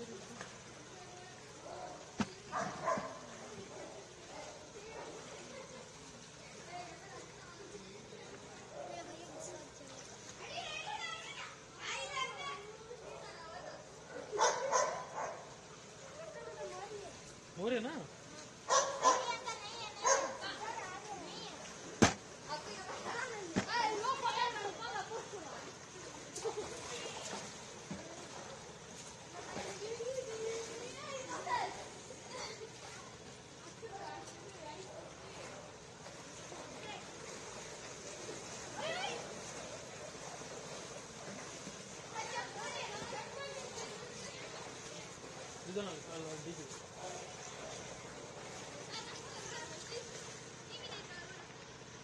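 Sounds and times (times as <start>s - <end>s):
feet splashing through water: 0.0s - 7.6s, 18.2s - 51.0s
people talking and calling: 0.0s - 52.0s.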